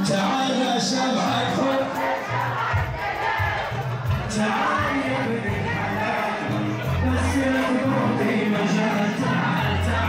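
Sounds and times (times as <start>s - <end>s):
crowd shouting: 0.0s - 10.0s
live band playing dance music: 0.0s - 10.0s
heavy repeating bass line: 1.8s - 10.0s.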